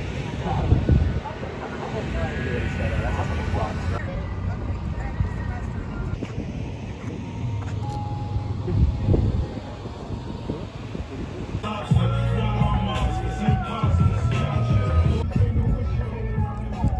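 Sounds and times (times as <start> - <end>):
wind on microphone: 0.0 - 4.0, 8.5 - 16.9
low vehicle rumble: 0.0 - 16.9
indistinct voices: 8.0 - 16.9.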